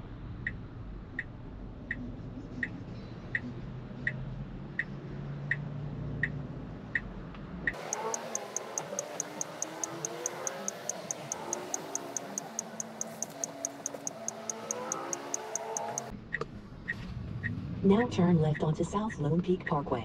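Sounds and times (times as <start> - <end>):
car turn signal ticking: 7.7 - 16.5
quick high ticking: 7.8 - 16.1
sliding and stepped tones: 7.8 - 16.1.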